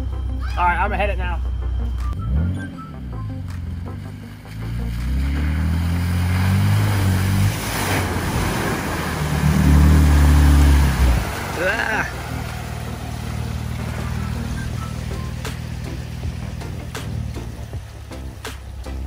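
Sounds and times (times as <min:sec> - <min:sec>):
pickup engine revving: 0:01.1 - 0:19.0
tyres churning and splashing in mud: 0:03.4 - 0:19.0.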